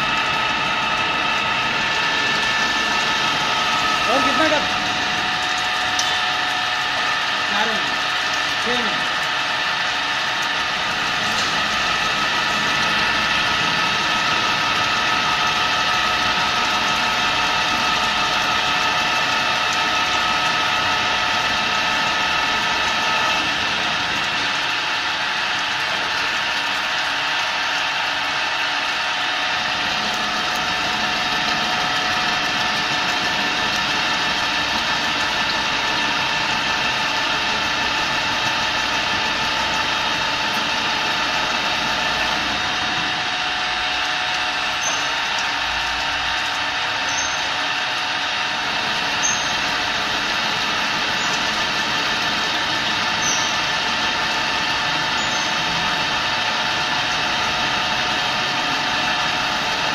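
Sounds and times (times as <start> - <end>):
milling machine whine: 0.0 - 59.9.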